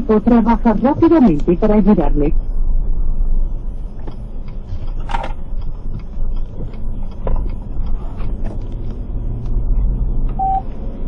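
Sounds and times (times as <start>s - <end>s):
car interior rumble: 0.0s - 11.0s
phone on-hold beep: 10.4s - 10.7s.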